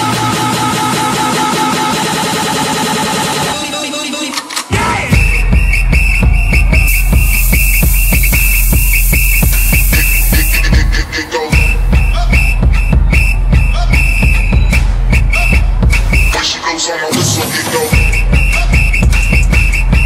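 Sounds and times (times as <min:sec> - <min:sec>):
electronic dance music: 0:00.0 - 0:20.0
steady hiss: 0:06.9 - 0:10.6.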